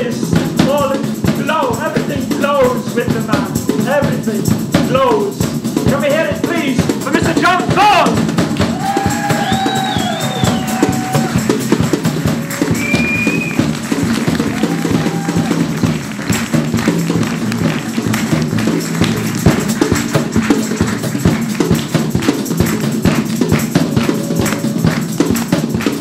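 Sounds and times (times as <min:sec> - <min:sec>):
drum kit beat: 0:00.0 - 0:26.0
tambourine: 0:00.0 - 0:26.0.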